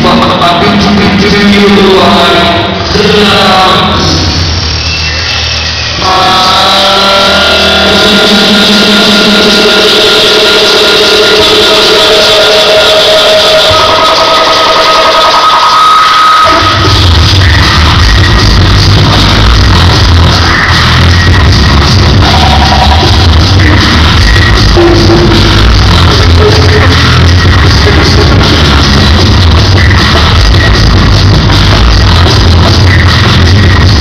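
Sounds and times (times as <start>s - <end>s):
looped beatbox vocal sounds: 0.0s - 1.4s, 16.4s - 34.0s
heavy bass line: 0.0s - 34.0s.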